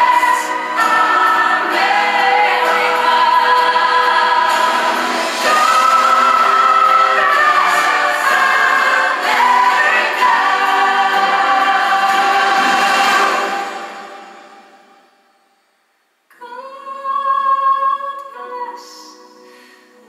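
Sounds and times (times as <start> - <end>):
choir singing long held notes: 0.0 - 15.4.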